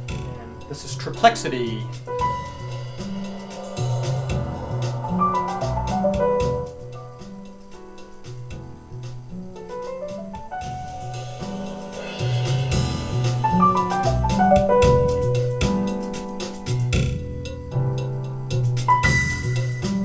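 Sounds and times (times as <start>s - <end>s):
instrumental music through speakers: 0.0s - 20.0s.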